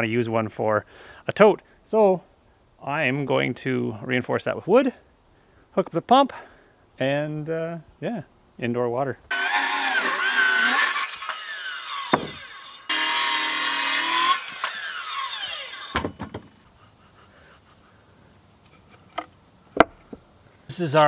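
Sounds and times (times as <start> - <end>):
saw motor whining down: 9.3 - 16.3
circular saw cutting wood: 9.3 - 16.8.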